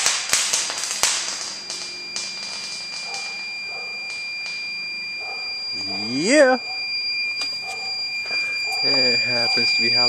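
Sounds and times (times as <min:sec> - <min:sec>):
high-pitched alarm tone: 0:01.2 - 0:10.0.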